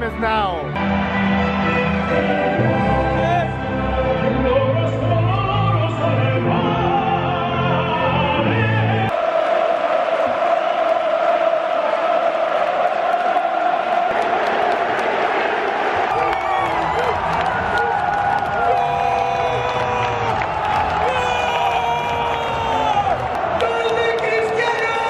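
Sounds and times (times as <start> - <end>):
stadium crowd cheering and chanting: 0.0 - 25.0
choral music: 0.2 - 25.0
people shouting: 15.3 - 24.2.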